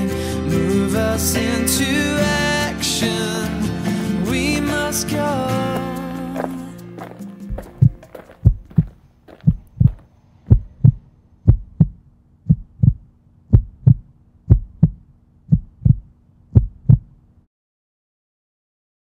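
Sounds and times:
heartbeat double thump: 0:07.5 - 0:17.2
faint low hum: 0:07.5 - 0:17.5.

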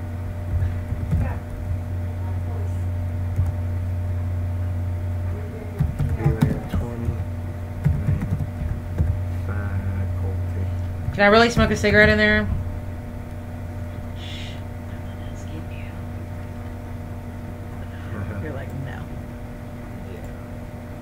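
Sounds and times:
low electrical hum: 0:00.0 - 0:21.0
computer keyboard typing: 0:05.8 - 0:06.8, 0:07.8 - 0:09.2.

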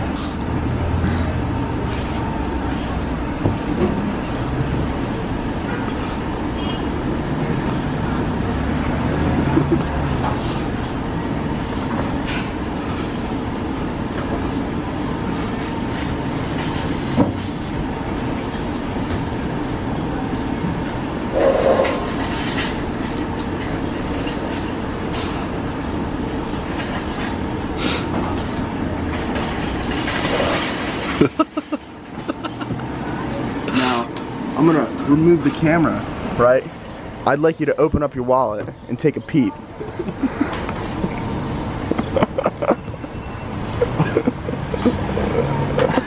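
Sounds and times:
rumble of passing vehicles: 0:00.0 - 0:46.0.

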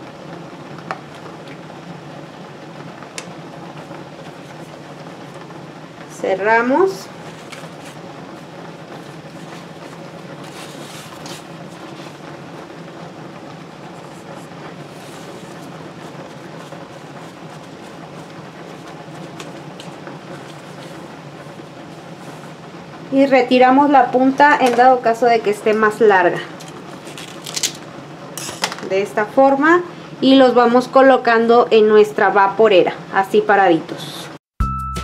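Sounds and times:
steady low hum: 0:00.0 - 0:31.7
corn husk rustling: 0:07.0 - 0:12.5, 0:13.7 - 0:22.6, 0:26.4 - 0:28.6.

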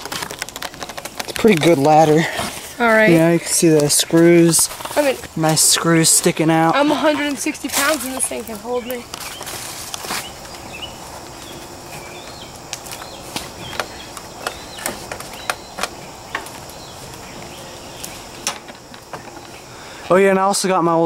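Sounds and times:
steady outdoor hiss: 0:00.0 - 0:21.0.

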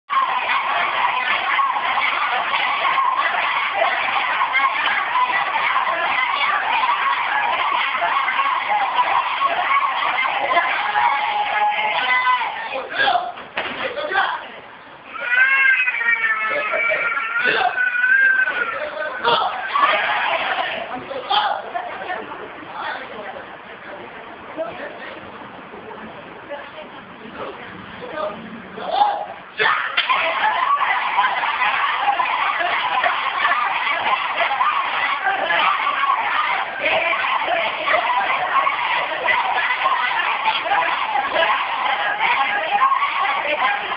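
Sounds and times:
high-pitched drawn-out shout: 0:00.1 - 0:13.2, 0:15.1 - 0:21.7, 0:28.9 - 0:43.9
children's voices overlapping: 0:00.1 - 0:23.8, 0:29.2 - 0:43.9.

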